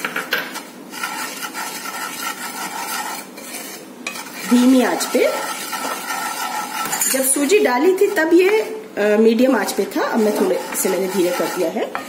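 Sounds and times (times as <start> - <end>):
spoon scraping semolina in pan: 0.4 - 8.7, 9.5 - 12.0.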